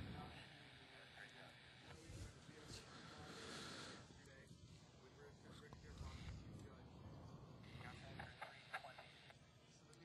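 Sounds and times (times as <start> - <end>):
faint indistinct voices: 0.0 - 10.0.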